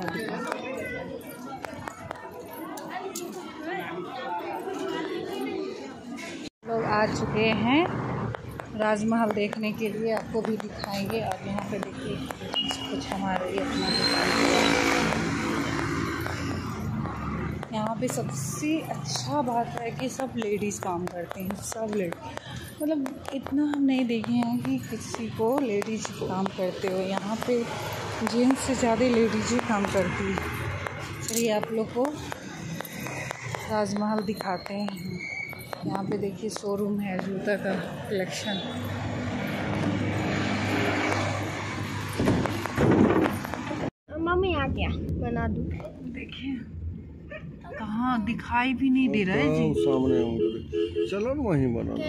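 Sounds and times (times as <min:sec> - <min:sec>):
road noise: 0:00.0 - 0:52.0
vehicle engine passing by: 0:38.7 - 0:43.9.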